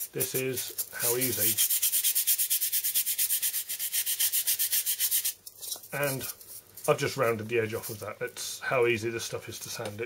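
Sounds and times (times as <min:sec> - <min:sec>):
palm rubbing foam: 0:00.0 - 0:05.4.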